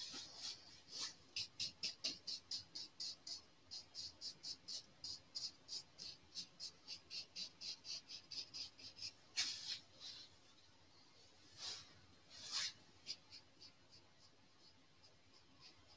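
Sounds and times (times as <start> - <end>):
paintbrush scratching on canvas: 0.0 - 10.3, 11.5 - 15.9.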